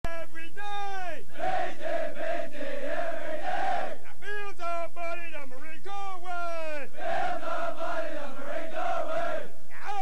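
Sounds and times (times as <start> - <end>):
man shouting a call: 0.0 - 1.3, 4.0 - 7.0, 9.7 - 10.0
recruits shouting in unison: 1.3 - 4.0, 7.0 - 10.0.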